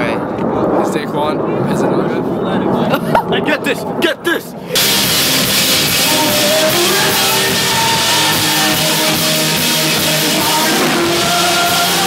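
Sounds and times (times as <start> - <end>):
heavy rock band playing: 4.8 - 12.0.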